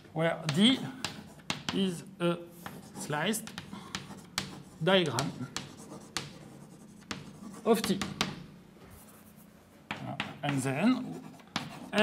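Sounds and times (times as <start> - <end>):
chalk tapping on blackboard: 0.4 - 2.0, 2.6 - 8.5, 9.9 - 12.0
chalk scratching on blackboard: 2.6 - 8.4, 9.0 - 12.0.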